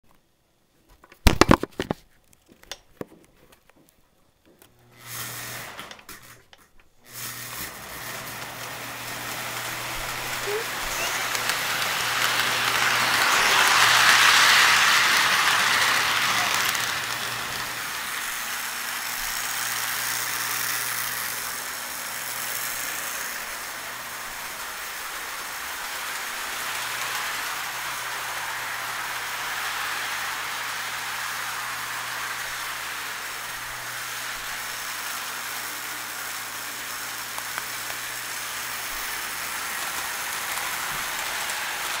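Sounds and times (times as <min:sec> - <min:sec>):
model train rattling rumble: 0:07.9 - 0:42.0.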